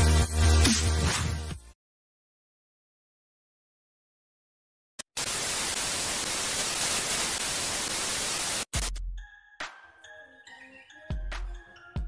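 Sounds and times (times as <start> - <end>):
loud static hiss: 5.0 - 8.9.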